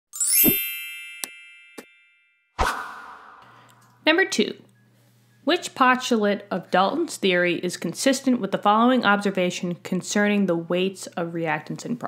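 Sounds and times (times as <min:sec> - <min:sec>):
bright ringing chime: 0:00.2 - 0:02.5
rising sweep: 0:02.6 - 0:03.6.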